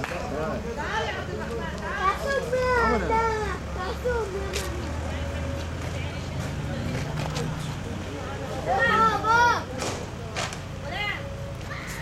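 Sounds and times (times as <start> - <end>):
faint voices: 0.0 - 12.0
low street rumble: 0.0 - 12.0.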